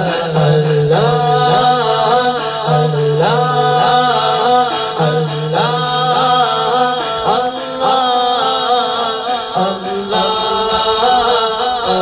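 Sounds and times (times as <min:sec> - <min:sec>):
lead voice singing ornamented melody: 0:00.0 - 0:12.0.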